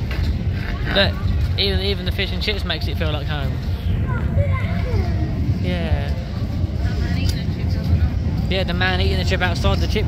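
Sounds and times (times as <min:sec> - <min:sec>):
city rumble: 0:00.0 - 0:10.0
faint voices: 0:00.0 - 0:10.0.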